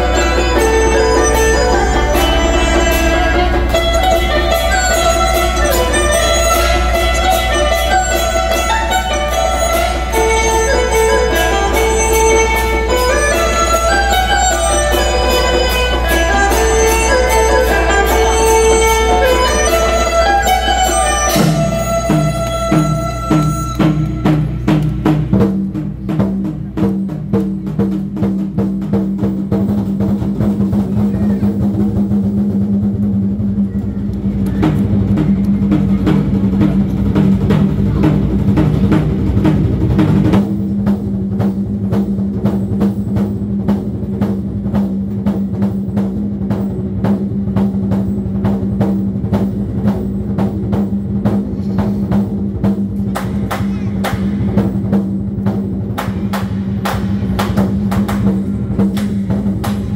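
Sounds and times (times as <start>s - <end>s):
barrel drums rolling: 0.0s - 59.9s
drum kit: 0.0s - 59.9s.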